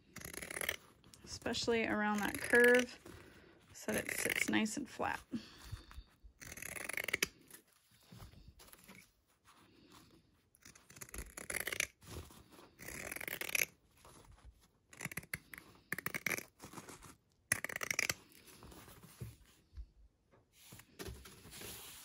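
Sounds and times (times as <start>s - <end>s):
shears snipping fabric: 0.1s - 3.0s, 3.8s - 5.2s, 6.4s - 7.6s.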